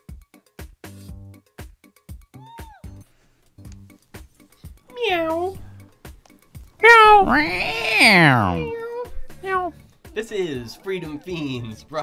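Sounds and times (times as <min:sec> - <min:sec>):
meow-like cries: 0:02.4 - 0:03.0, 0:06.8 - 0:09.8.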